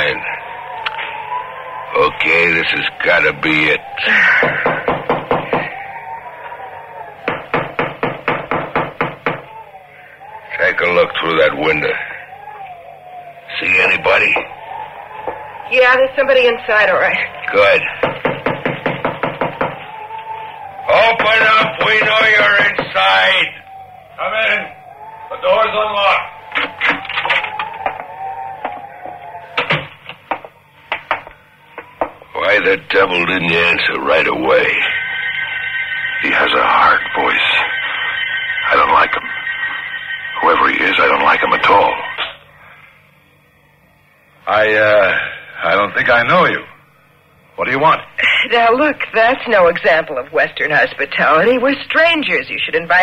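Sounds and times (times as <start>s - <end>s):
faint wavering whistling tone: 0.0s - 18.7s, 19.6s - 52.6s
fist knocking on wooden door: 4.2s - 5.8s, 7.2s - 9.5s, 17.9s - 19.8s.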